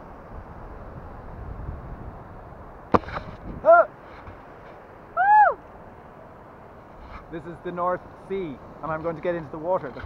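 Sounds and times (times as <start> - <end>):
steady faint hiss: 0.0 - 10.0
person whooping: 5.2 - 5.6.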